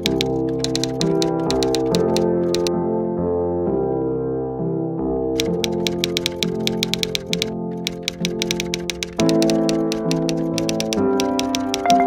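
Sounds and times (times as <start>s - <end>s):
typewriter key clicks: 0.0s - 2.7s, 5.4s - 12.0s
background music: 0.0s - 12.0s.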